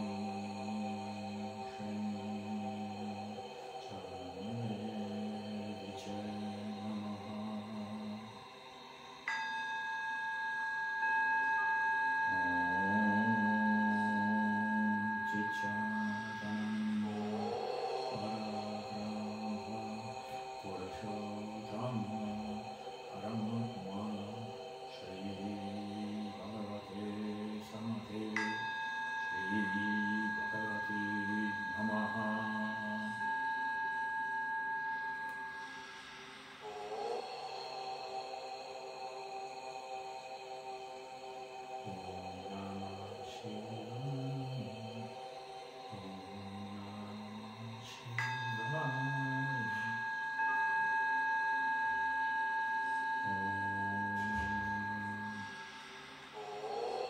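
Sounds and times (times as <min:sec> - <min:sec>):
low droning chanted mantra: 0:00.0 - 0:57.0
singing bowl ringing: 0:09.0 - 0:40.7, 0:41.5 - 0:57.0.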